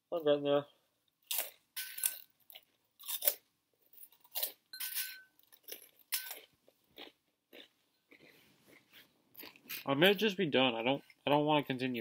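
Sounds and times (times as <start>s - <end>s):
crunchy snack chewing: 1.2s - 4.7s, 5.4s - 9.9s.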